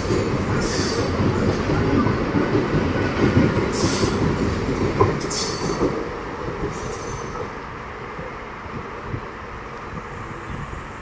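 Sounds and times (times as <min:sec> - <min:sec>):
train rolling past: 0:00.0 - 0:11.0.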